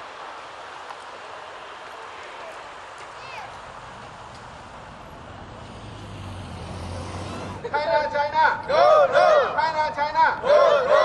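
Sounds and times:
vehicle engine rumble: 0:00.0 - 0:08.8
street traffic: 0:00.0 - 0:11.0
crowd chanting: 0:08.6 - 0:09.6, 0:10.3 - 0:11.0.

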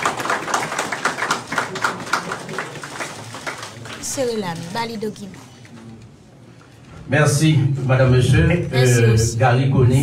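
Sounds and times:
small group applauding: 0:00.0 - 0:05.3.

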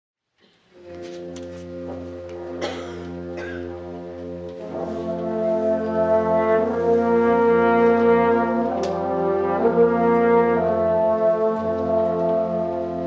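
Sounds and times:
concert band playing chords: 0:00.8 - 0:13.0.

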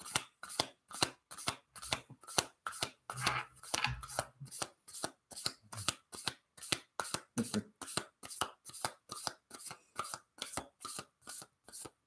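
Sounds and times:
cards being shuffled: 0:00.0 - 0:07.6.

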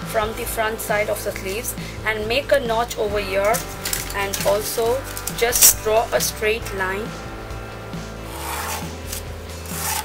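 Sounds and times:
pencil scratching on paper: 0:08.3 - 0:10.0.

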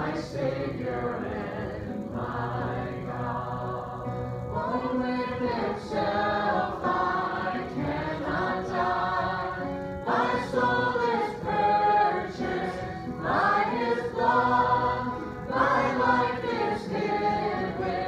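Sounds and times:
acoustic guitar: 0:00.0 - 0:18.0
congregation singing a hymn: 0:00.0 - 0:18.0.

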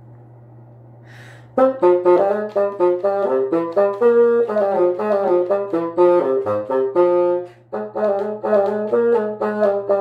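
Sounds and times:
breath: 0:01.0 - 0:01.6
bassoon melody: 0:01.6 - 0:10.0.

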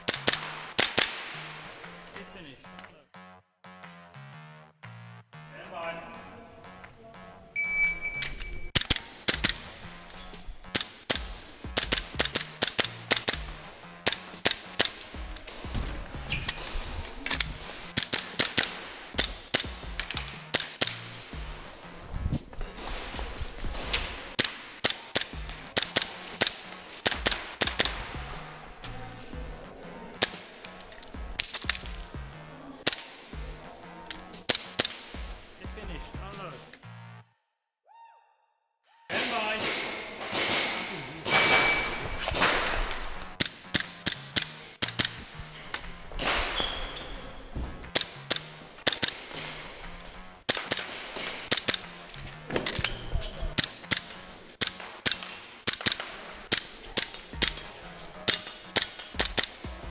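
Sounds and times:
music: 0:00.0 - 0:37.5, 0:39.1 - 0:59.9
shot timer beep: 0:07.6 - 0:08.7.

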